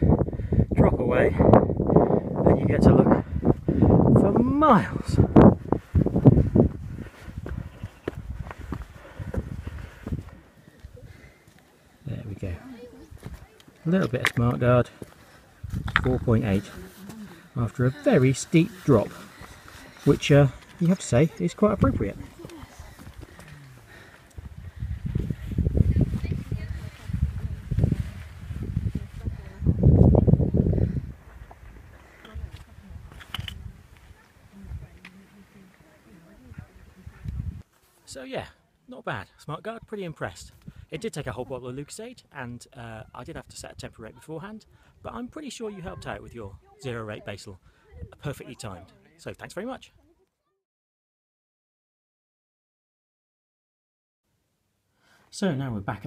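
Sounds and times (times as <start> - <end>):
faint wind: 0.0 - 50.6
footsteps on stones: 5.7 - 11.7, 13.1 - 29.2.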